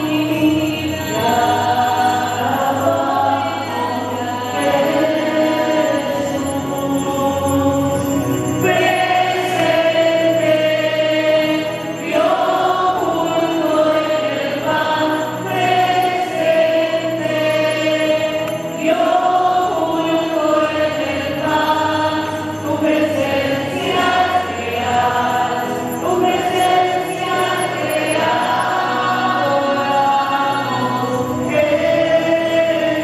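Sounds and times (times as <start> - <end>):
choir singing a hymn: 0.0 - 33.0.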